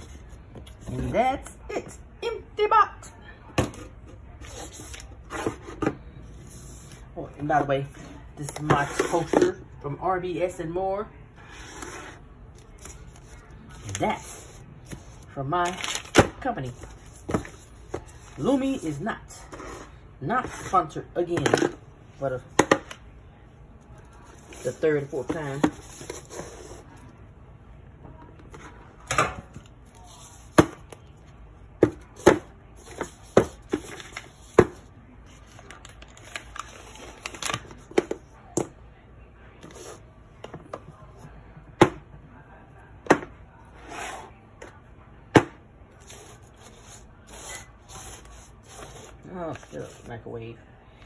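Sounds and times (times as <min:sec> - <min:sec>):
low steady hum: 0:00.0 - 0:51.0.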